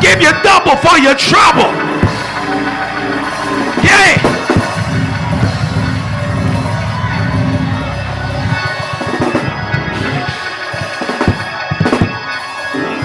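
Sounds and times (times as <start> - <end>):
church organ: 0.0 - 10.6
congregation shouting and cheering: 0.0 - 13.0
drums playing: 1.8 - 12.7.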